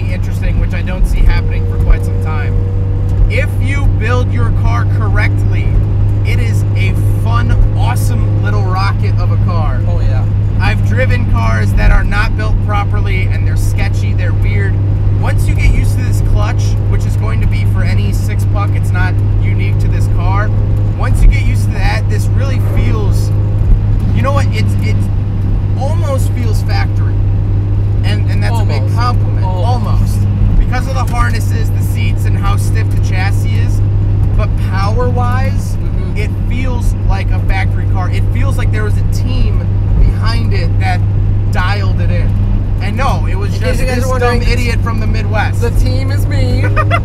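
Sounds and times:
man talking: 0.0 - 2.6, 3.3 - 23.4, 24.1 - 25.1, 25.8 - 27.2, 28.0 - 47.0
car engine hum in cabin: 0.0 - 47.0.

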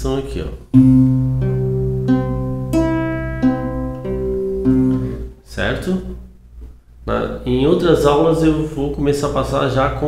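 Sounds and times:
fingerpicked classical guitar: 0.7 - 5.3.

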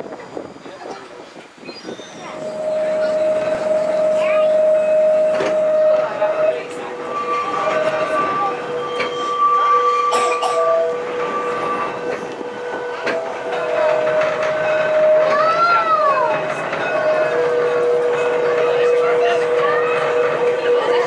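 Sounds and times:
tram running rumble: 0.0 - 21.0.

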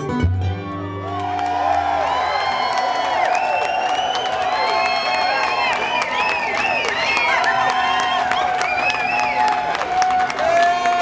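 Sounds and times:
audience cheering and clapping: 0.6 - 11.0.

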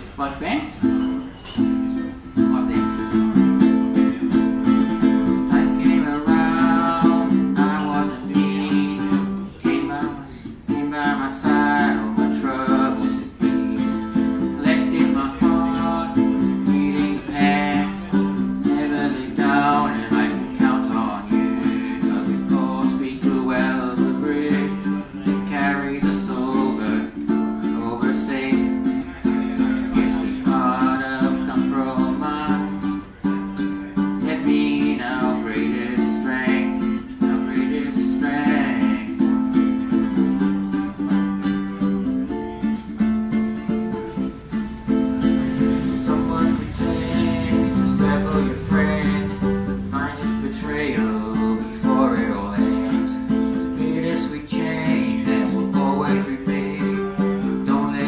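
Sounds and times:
ukulele strumming chords: 0.0 - 58.0
person singing: 0.8 - 58.0.

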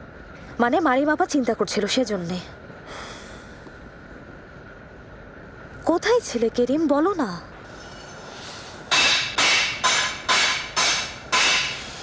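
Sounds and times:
hammer striking metal: 8.9 - 12.0.

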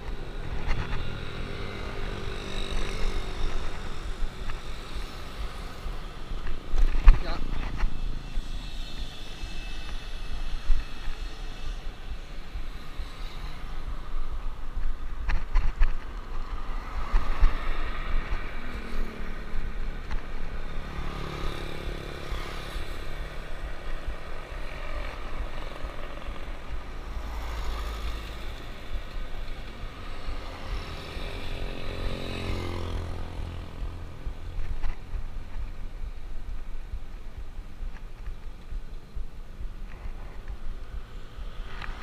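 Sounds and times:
motor vehicles passing: 0.0 - 42.0
wind rumbling on microphone: 0.0 - 42.0.

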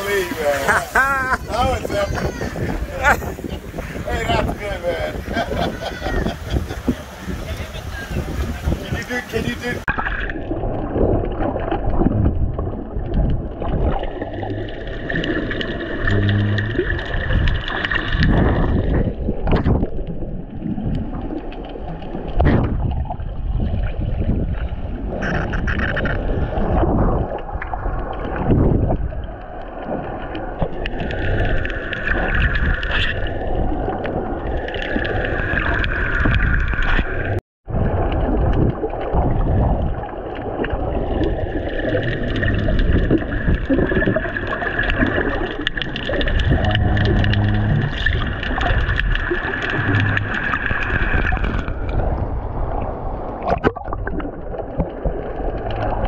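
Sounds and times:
water sloshing and gurgling underwater: 0.0 - 56.0.

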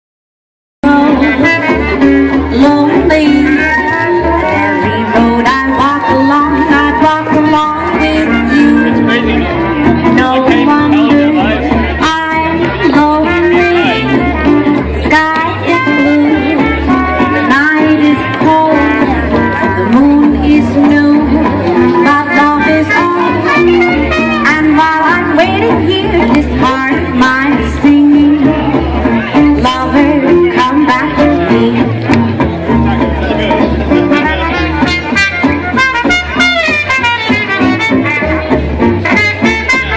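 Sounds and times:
jazz band playing swing: 0.8 - 39.9.

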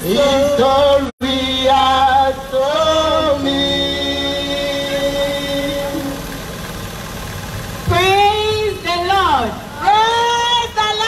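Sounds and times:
women singing gospel: 0.0 - 6.4.

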